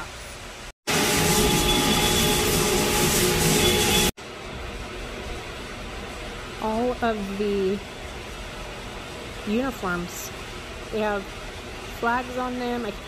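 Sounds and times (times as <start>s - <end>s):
loud machine noise with whine: 0.9s - 13.0s.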